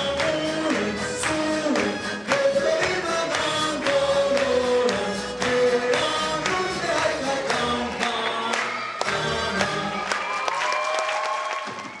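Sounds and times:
man singing into a microphone: 0.0s - 8.6s
voices singing along: 0.0s - 10.3s
hand-clapping on the beat: 0.0s - 12.0s.

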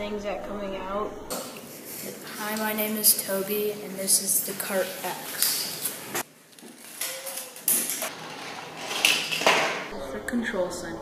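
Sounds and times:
plastic cart clattering down track: 7.0s - 9.9s.

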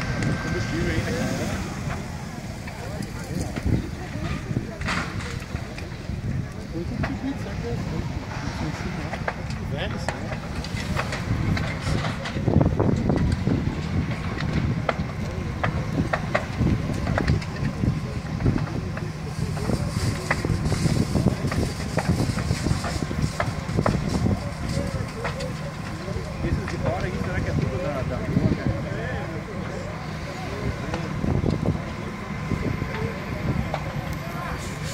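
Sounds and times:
fire crackling and popping: 0.0s - 34.9s
fire low rumble: 0.0s - 34.9s
indistinct voices: 0.0s - 34.9s.

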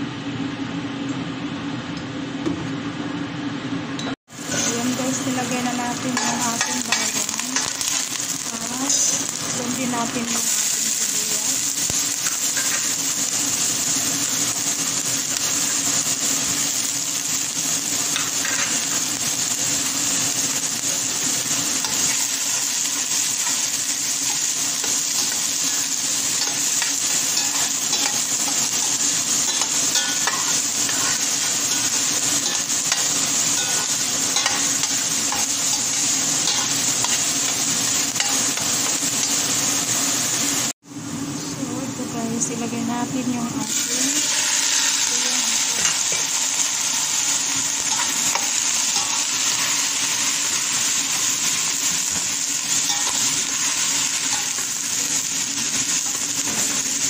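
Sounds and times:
garlic and onion sizzling in oil: 4.3s - 57.0s.

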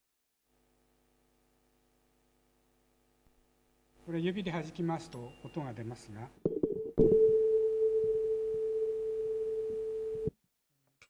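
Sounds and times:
tuning fork ringing: 7.0s - 10.3s.

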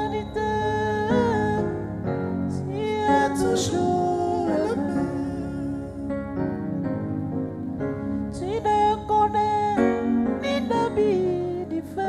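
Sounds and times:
men singing gospel song: 2.7s - 6.1s.

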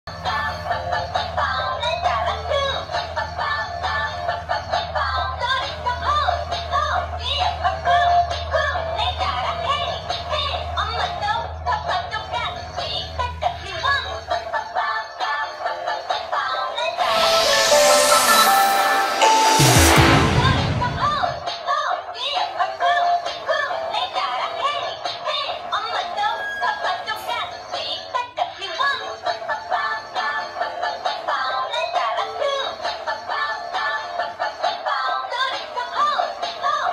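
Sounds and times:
toy speaker playing a song: 0.1s - 19.6s, 25.1s - 36.9s.

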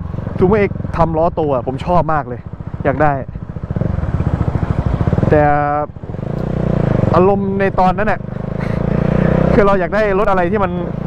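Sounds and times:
motorcycle engine pulsing: 0.0s - 11.0s.

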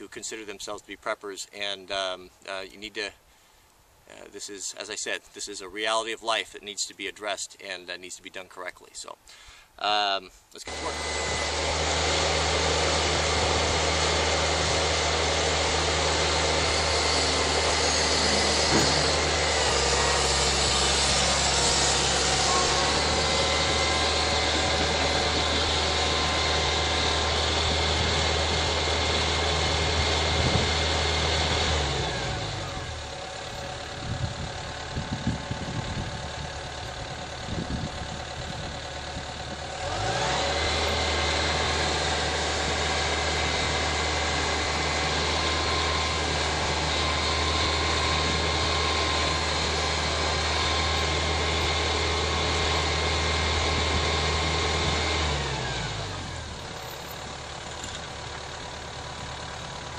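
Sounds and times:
excavator diesel engine running: 10.7s - 59.9s.

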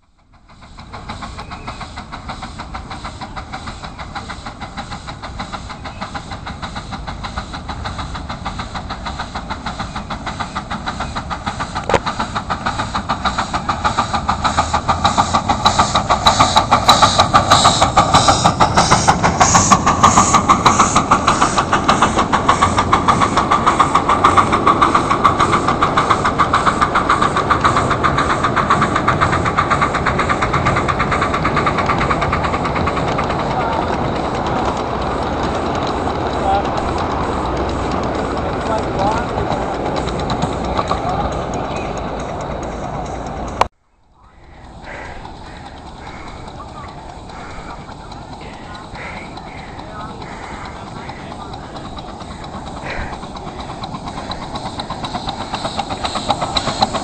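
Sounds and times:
steam locomotive exhaust chuffs: 0.0s - 57.0s
wheels on rails: 0.0s - 57.0s.

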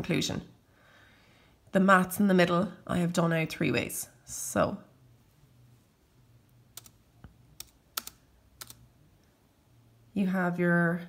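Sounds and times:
laptop keys clicking: 6.7s - 7.0s, 7.6s - 8.8s.

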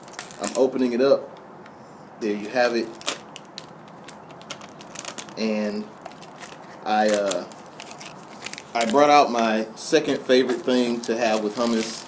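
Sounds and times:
plastic film crackling: 0.0s - 0.7s, 2.7s - 9.3s, 10.1s - 12.0s.

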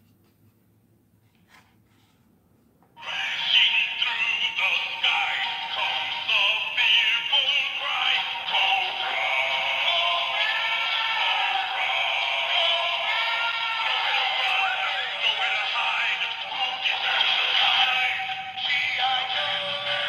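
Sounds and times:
toy playing a song with singing: 3.0s - 20.0s.

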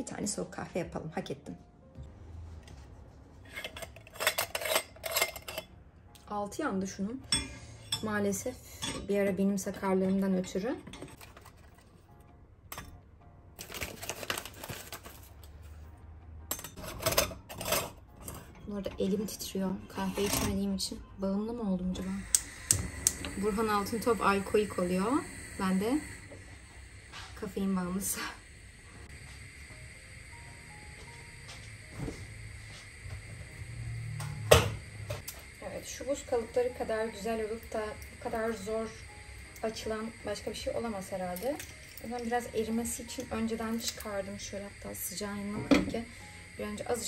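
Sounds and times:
metal pot clicking and scraping: 3.4s - 5.7s
paper bag rustling: 13.6s - 15.4s
gas burner rumbling: 16.5s - 47.0s.

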